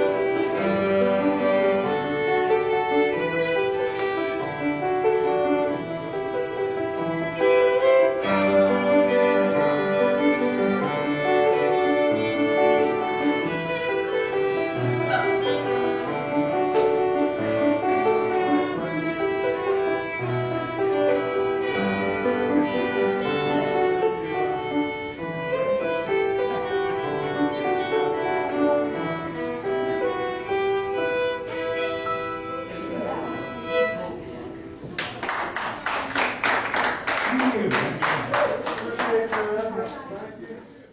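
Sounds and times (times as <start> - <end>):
fiddle and piano dance tune: 0.0 - 35.2
people clapping: 34.9 - 40.3.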